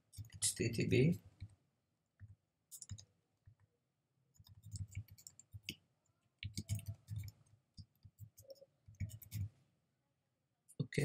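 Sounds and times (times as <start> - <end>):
keyboard typing: 2.2 - 3.7, 4.4 - 5.8, 6.4 - 9.5.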